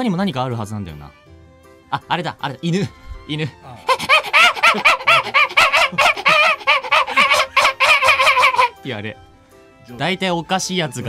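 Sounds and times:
man's falsetto calls: 0:03.8 - 0:08.8.

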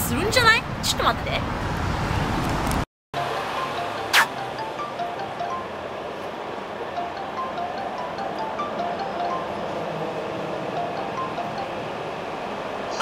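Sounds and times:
chime-like melody: 0:03.2 - 0:06.0, 0:06.9 - 0:10.0, 0:10.6 - 0:12.0.

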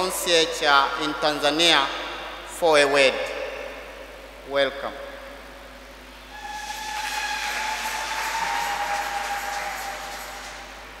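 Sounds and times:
held whistle-like tone: 0:06.3 - 0:09.7
congregation applauding: 0:06.3 - 0:11.0.

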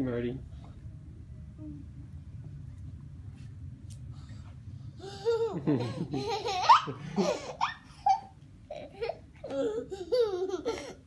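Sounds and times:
toddler giggling: 0:05.0 - 0:11.0.

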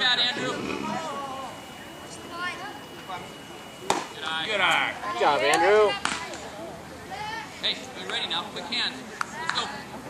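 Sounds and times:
people talking and calling: 0:00.0 - 0:10.0.

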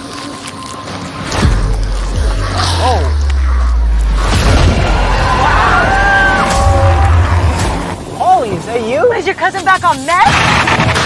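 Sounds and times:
deep rumbling boom: 0:01.4 - 0:08.2.

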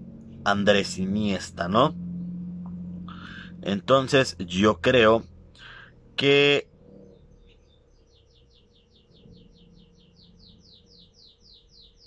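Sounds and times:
bird chirping: 0:01.2 - 0:04.4, 0:05.1 - 0:12.0.

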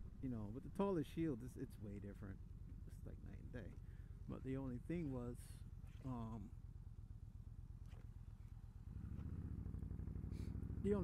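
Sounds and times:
motorcycle engine running: 0:02.1 - 0:11.0.

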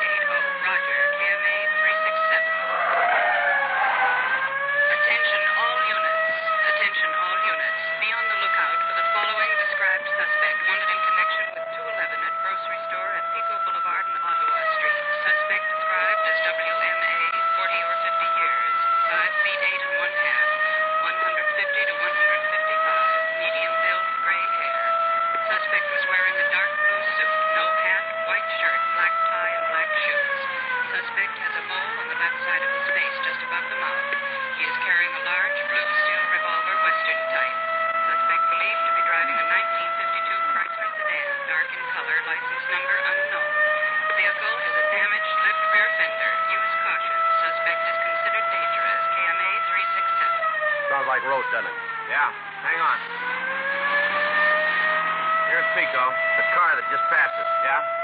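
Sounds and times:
wailing police siren: 0:00.0 - 0:58.0
car engine and road noise: 0:02.7 - 0:04.8, 0:51.9 - 0:57.8.

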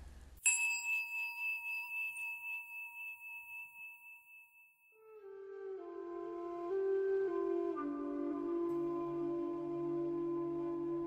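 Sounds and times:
meditation bell ringing: 0:00.4 - 0:05.1.

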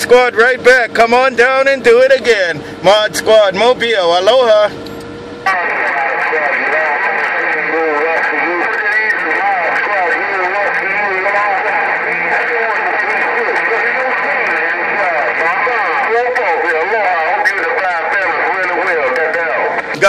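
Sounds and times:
voices over radio speaker: 0:00.0 - 0:04.7, 0:05.4 - 0:20.0
radio static hiss: 0:05.4 - 0:20.0
static crackles: 0:05.5 - 0:20.0.

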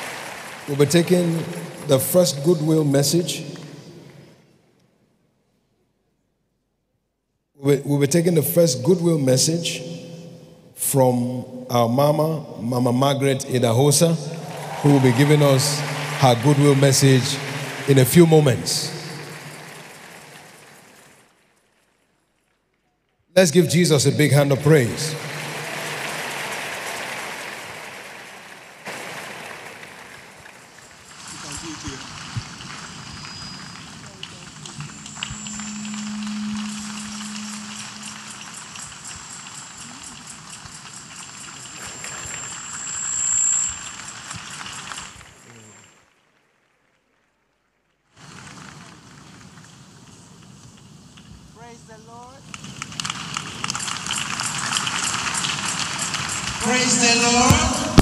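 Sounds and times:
crowd clapping and cheering: 0:00.0 - 0:04.2, 0:13.8 - 0:22.0, 0:24.2 - 0:40.5, 0:52.8 - 0:58.0
packed auditorium noise: 0:00.0 - 0:04.4, 0:10.8 - 0:22.0, 0:23.4 - 0:39.0, 0:53.0 - 0:58.0.

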